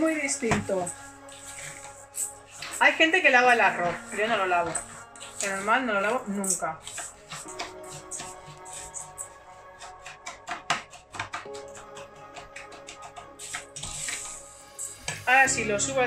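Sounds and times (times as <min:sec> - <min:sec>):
background music: 0:00.0 - 0:16.0
spatula stirring dry rice in pan: 0:00.0 - 0:16.0.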